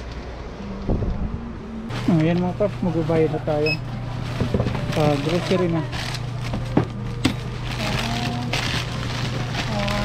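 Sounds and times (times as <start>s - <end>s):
low microphone rumble: 0.0s - 5.0s.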